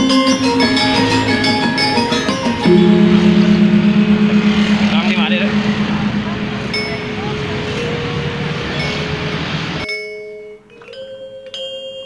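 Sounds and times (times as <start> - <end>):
gamelan metallophone notes ringing: 2.7 - 9.2.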